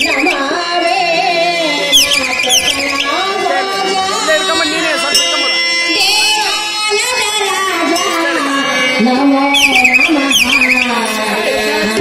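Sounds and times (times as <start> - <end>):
high warbling chirps: 0.0 - 0.5, 1.9 - 3.4, 9.5 - 11.0.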